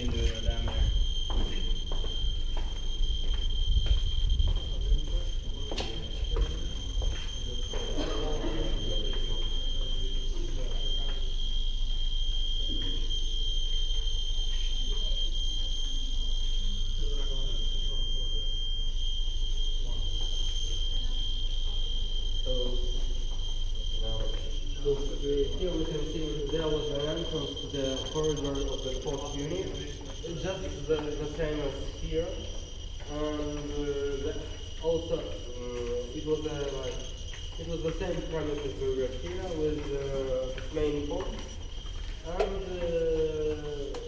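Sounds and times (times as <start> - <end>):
geiger counters clicking: 0.0 - 44.0
high-pitched alarm tone: 0.0 - 44.0.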